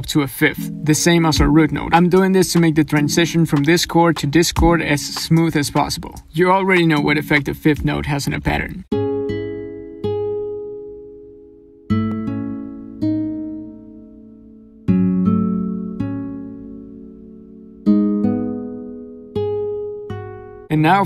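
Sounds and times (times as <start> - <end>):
plucked guitar-like melody: 0.3 - 21.0.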